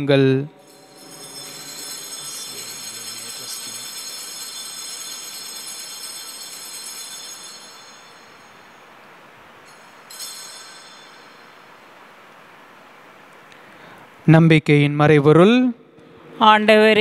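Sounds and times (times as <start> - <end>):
altar bells ringing: 0.0 - 13.2.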